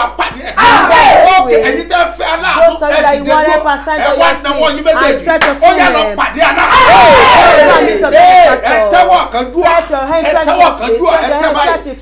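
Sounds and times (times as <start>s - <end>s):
man shouting prayer cries: 0.0s - 11.9s.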